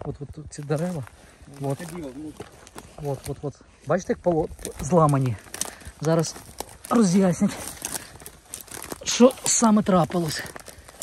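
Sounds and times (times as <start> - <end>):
footsteps on dry twigs: 0.0 - 11.0.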